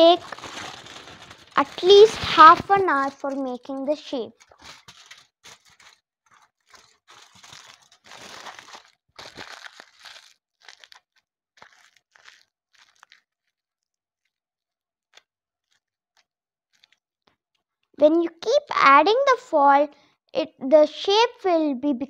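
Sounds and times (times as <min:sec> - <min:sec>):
aluminium foil crumpling: 0:00.0 - 0:14.4, 0:15.1 - 0:17.0.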